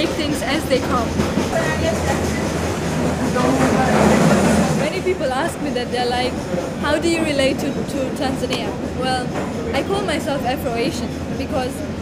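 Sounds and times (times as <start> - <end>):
train wheels rumbling: 0.0 - 12.0.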